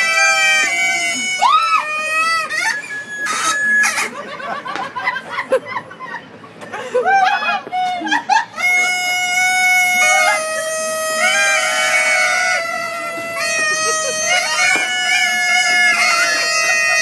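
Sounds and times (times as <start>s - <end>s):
kazoos buzzing: 0.0s - 5.3s, 7.9s - 17.0s.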